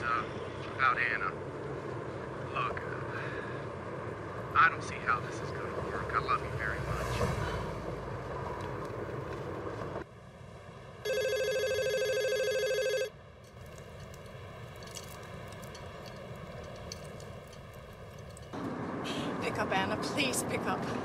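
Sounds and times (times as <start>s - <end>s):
warbling electronic telephone ring: 11.1s - 13.1s.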